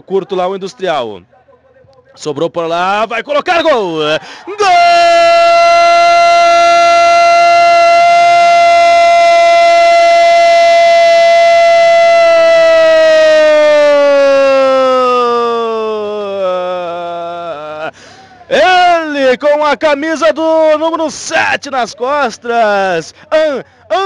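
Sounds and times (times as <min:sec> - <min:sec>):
man's long goal cry: 0:04.2 - 0:18.0.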